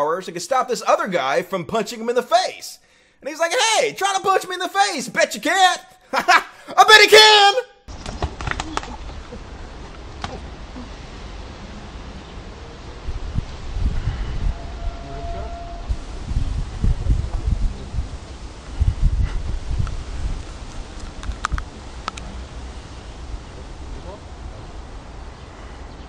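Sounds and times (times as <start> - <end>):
wind rumbling on microphone: 7.9 - 26.0
sharp faint clicks: 20.7 - 22.3.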